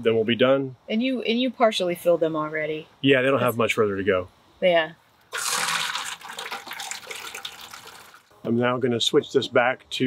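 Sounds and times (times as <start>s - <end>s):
water pouring into plastic bucket: 5.3s - 8.3s.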